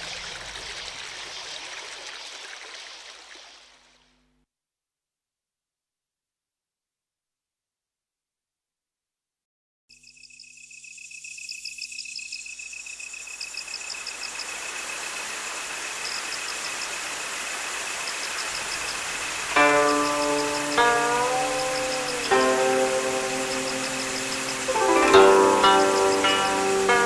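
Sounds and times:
background hiss: 0:13.0 - 0:27.0
steady high tone: 0:18.6 - 0:27.0
zither plucked notes: 0:19.5 - 0:27.0.

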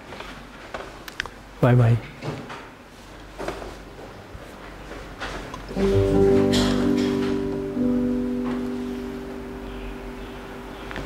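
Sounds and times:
electronic keyboard sustained chord: 0:05.7 - 0:11.0.

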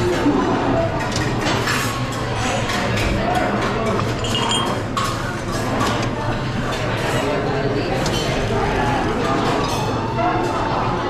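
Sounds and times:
background chatter: 0:00.0 - 0:11.0
crockery clinking: 0:04.2 - 0:05.1.

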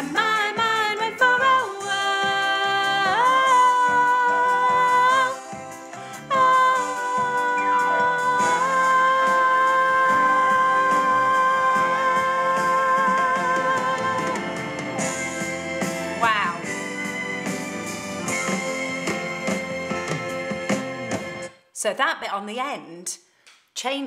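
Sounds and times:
recorded backing track: 0:00.0 - 0:21.7.

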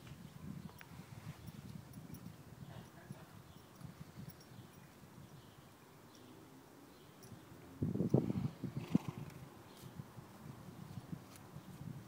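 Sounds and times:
horse snorting: 0:08.8 - 0:09.4.

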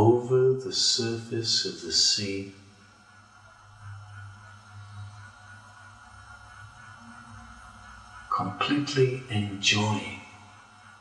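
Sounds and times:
ambient background music drone: 0:00.0 - 0:11.0.

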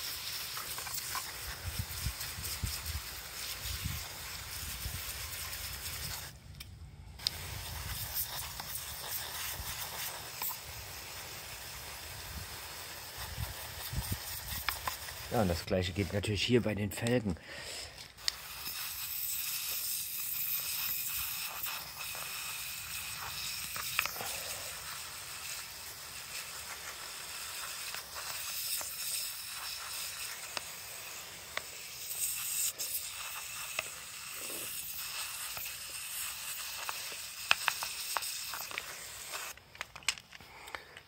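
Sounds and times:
water spattering on rims and paving: 0:00.0 - 0:06.3, 0:07.2 - 0:16.2, 0:17.7 - 0:40.1
pressure sprayer hissing: 0:00.0 - 0:06.4, 0:07.2 - 0:39.6.

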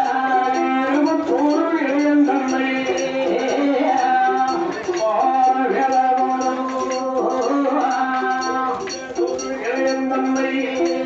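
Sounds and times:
light jingling percussion: 0:00.0 - 0:11.0.

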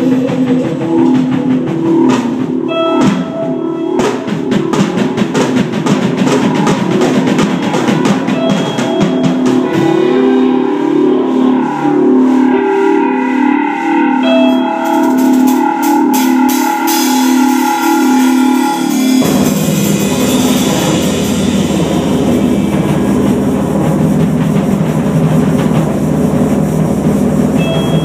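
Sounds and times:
cymbals: 0:00.0 - 0:28.0
rapid drumming: 0:00.0 - 0:28.0
rock band playing: 0:00.0 - 0:28.0
guitar and bass riff: 0:06.1 - 0:28.0.

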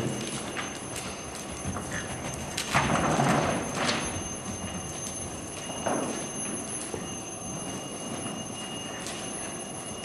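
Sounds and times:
horse hoofbeats: 0:00.0 - 0:10.0.

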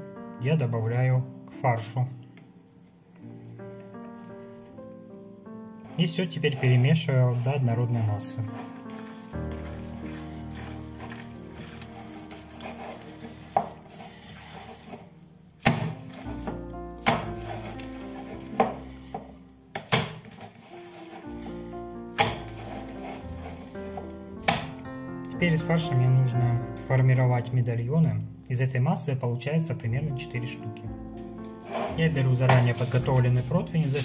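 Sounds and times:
background music with held tones: 0:00.0 - 0:34.0
meat being kneaded by hand: 0:05.8 - 0:24.9, 0:31.6 - 0:34.0.

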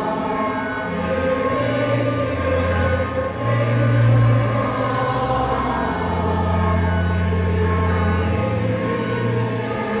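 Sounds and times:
church organ chords: 0:00.0 - 0:10.0.

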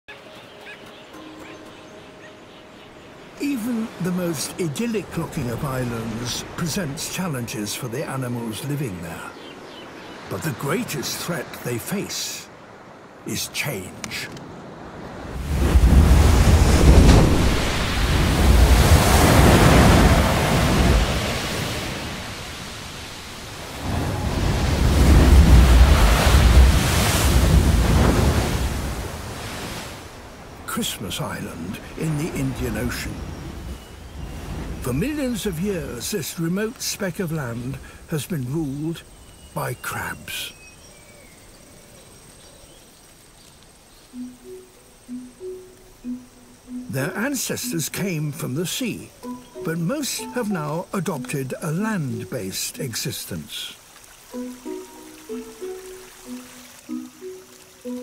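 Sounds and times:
birds chirping: 0:00.0 - 0:58.0
surf breaking on rocks: 0:13.2 - 0:39.0
low steady tones: 0:44.1 - 0:53.7.

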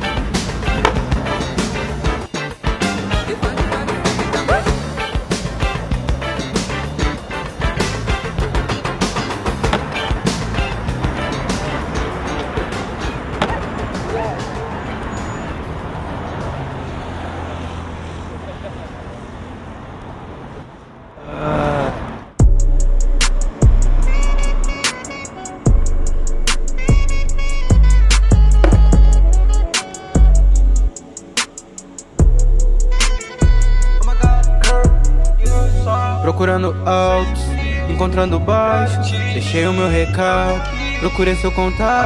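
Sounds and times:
rock music with guitar: 0:00.0 - 0:14.0
music: 0:00.0 - 0:15.8, 0:22.4 - 0:42.0
city road traffic: 0:00.0 - 0:42.0
skateboard clacking on concrete: 0:00.2 - 0:01.3, 0:08.5 - 0:10.7, 0:11.6 - 0:14.1, 0:28.6 - 0:29.1
voice: 0:21.2 - 0:22.1.

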